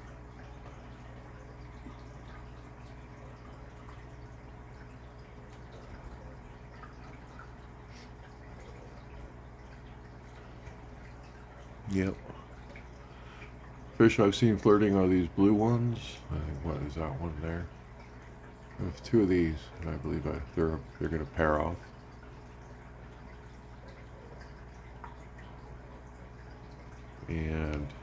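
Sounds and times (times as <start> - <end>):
aquarium pump hum: 0.0 - 28.0
water bubbling: 0.0 - 28.0
water dripping: 0.0 - 28.0.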